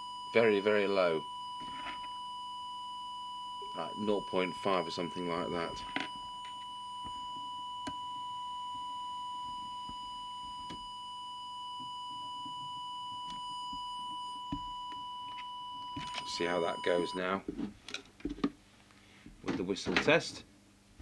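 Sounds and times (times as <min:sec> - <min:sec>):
steady test tone whistle: 0:00.0 - 0:17.4.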